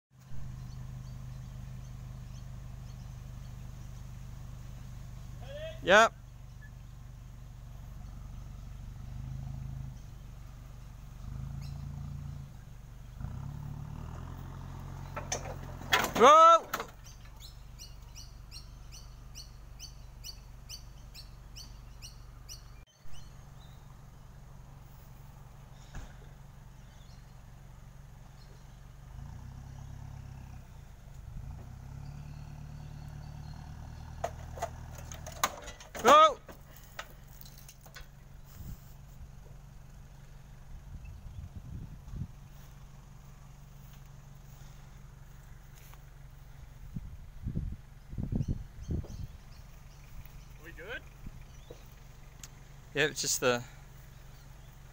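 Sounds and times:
steady low hum: 6.1s - 15.2s
bird chirping rapidly: 9.8s - 13.4s, 17.0s - 23.9s, 47.9s - 54.9s
clicks and knocks: 34.2s - 38.1s.

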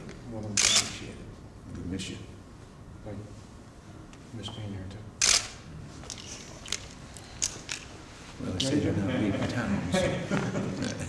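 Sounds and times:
camera shutter clicking: 0.6s - 1.0s, 5.2s - 5.6s.

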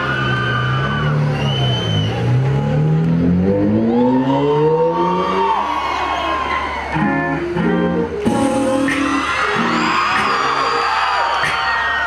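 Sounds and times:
car engine revving: 0.1s - 5.6s
dance music: 6.5s - 12.0s.

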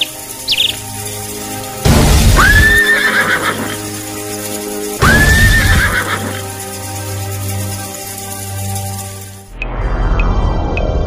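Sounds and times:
background music: 0.0s - 10.4s.

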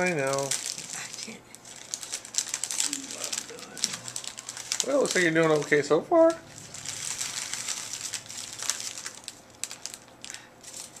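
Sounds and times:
scissors cutting foil: 0.0s - 5.6s
foil crinkling: 0.0s - 11.0s.

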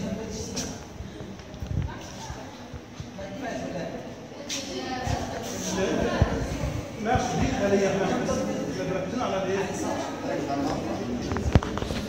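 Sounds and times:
faint voices in a room: 0.0s - 12.0s.

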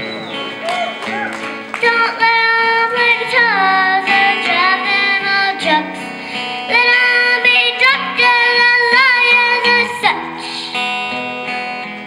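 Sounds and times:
acoustic guitar: 0.0s - 12.0s
girl singing into microphone: 1.8s - 11.0s.

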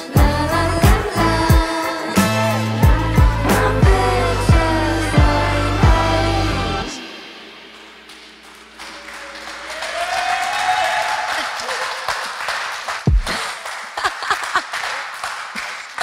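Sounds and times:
people clapping and cheering: 7.7s - 16.0s
person whooping: 9.0s - 12.3s
people laughing: 11.2s - 12.5s, 13.3s - 15.1s.

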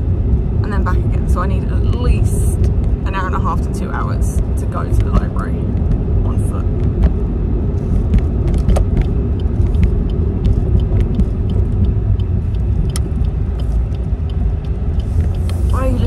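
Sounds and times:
engine and road rumble: 0.0s - 16.0s
light clicks and ticks: 8.1s - 16.0s.

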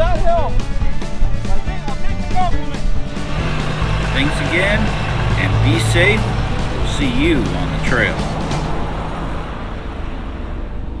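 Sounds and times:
vehicle engine and tyre noise: 2.8s - 11.0s.

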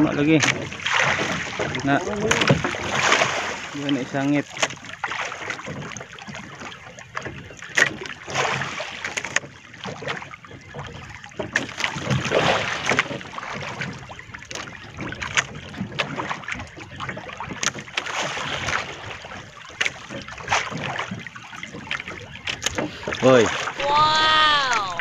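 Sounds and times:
water lapping against boat hull: 0.0s - 25.0s.

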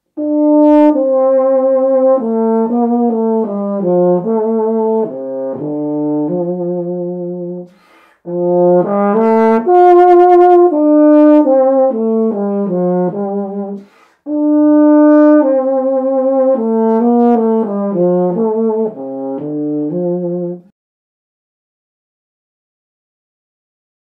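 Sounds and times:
euphonium melody: 0.2s - 7.7s, 8.3s - 20.6s
player breathing: 7.7s - 8.3s, 13.8s - 14.3s.

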